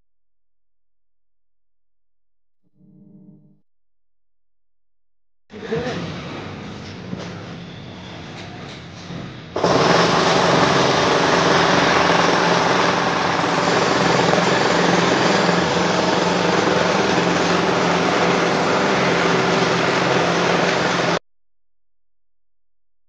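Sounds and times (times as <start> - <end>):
engine running loudly: 9.5 - 21.2.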